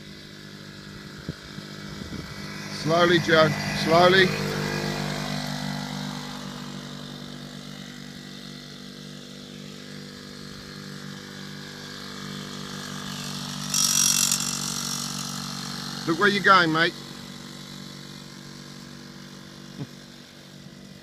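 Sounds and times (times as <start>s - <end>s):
two-stroke minibike engine: 0.0s - 21.0s.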